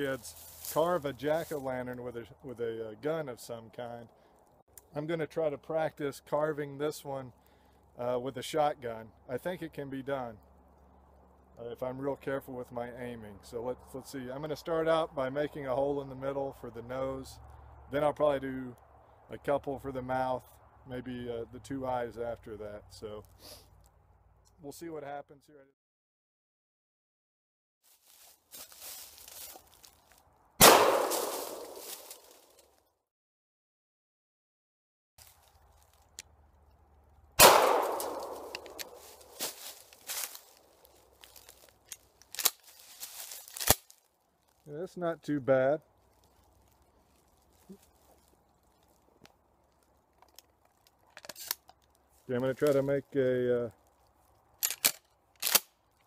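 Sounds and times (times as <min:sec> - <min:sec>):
shotgun blasts echoing: 0:30.6 - 0:32.1, 0:37.4 - 0:39.3
shotgun handling clicks: 0:37.4 - 0:39.3, 0:51.1 - 0:51.9, 0:54.6 - 0:55.8.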